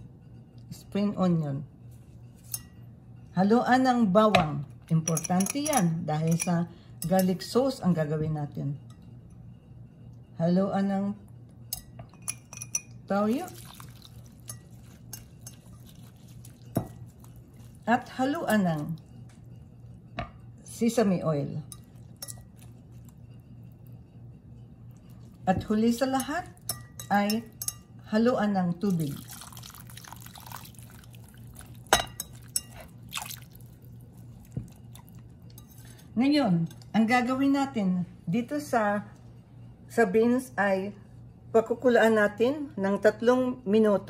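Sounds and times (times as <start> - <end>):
whisk clinking against glass bowl: 5.1 - 7.4, 11.7 - 28.2, 28.9 - 36.0.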